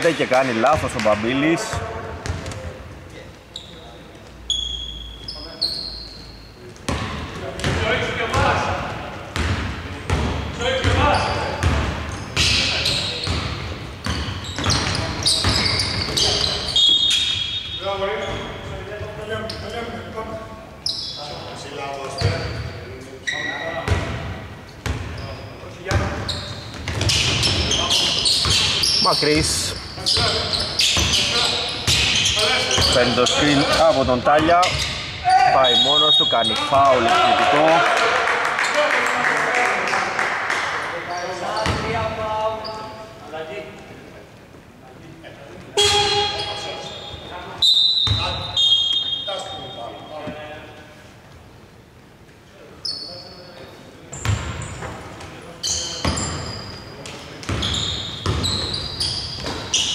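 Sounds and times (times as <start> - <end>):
sneakers squeaking: 0.7 - 20.1, 20.7 - 37.1, 41.1 - 43.8, 45.7 - 50.8, 52.8 - 59.9.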